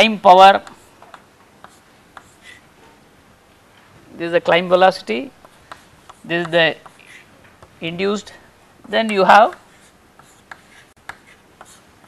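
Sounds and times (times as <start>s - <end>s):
chalk tapping and scratching: 0.5s - 2.6s, 5.3s - 7.8s, 8.9s - 12.0s.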